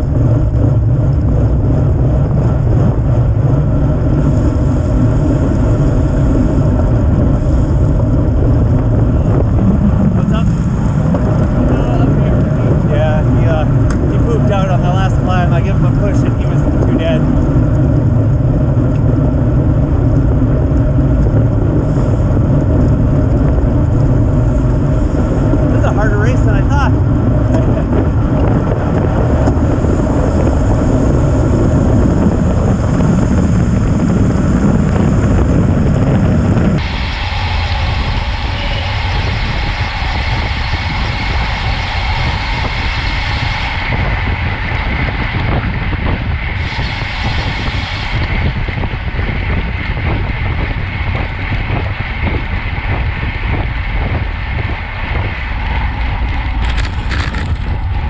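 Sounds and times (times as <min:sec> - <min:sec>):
tyre and road noise: 0:00.0 - 0:58.0
wind rushing over microphone: 0:00.0 - 0:58.0.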